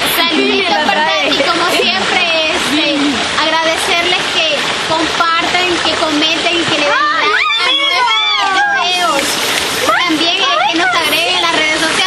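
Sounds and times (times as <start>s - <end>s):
people calling and chattering: 0.0s - 12.0s
stream running over rocks: 0.0s - 12.0s.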